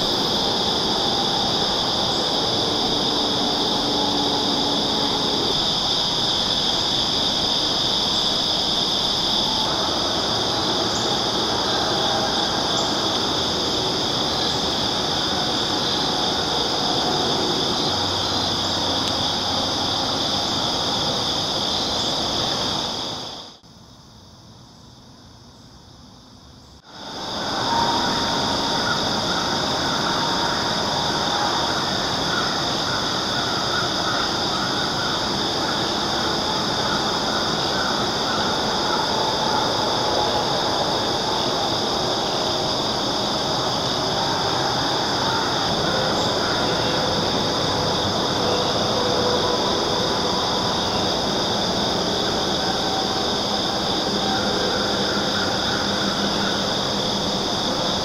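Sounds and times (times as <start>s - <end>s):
insects chirring: 0.0s - 58.0s.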